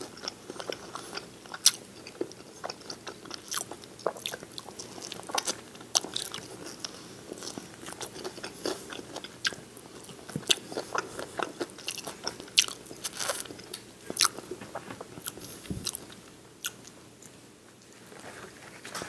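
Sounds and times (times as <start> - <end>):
wet chewing and crunching: 0.0 - 18.2.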